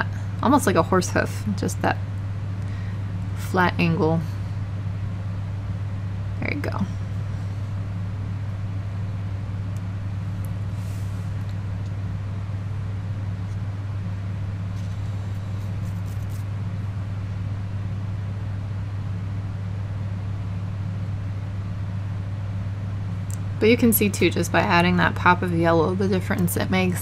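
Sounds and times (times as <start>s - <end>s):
low background hum: 0.0s - 27.0s.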